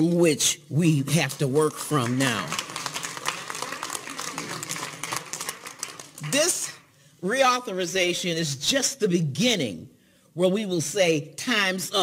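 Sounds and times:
people clapping: 1.3 - 6.8.

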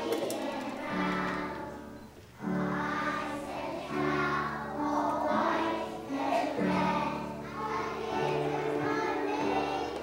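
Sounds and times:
children's choir singing: 0.0 - 10.0
piano: 0.0 - 10.0.

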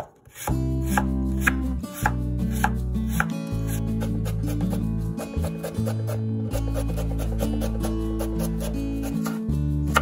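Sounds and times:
knife slicing on wooden board: 0.0 - 10.0
background music with bass: 0.4 - 10.0.

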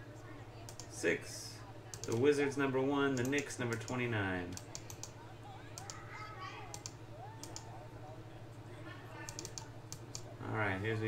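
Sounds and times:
mouse clicks: 6.7 - 7.7.

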